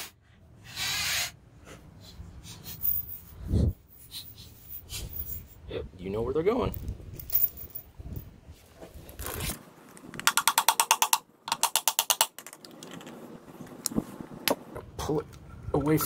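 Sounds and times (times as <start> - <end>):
handling noise: 6.7 - 14.8.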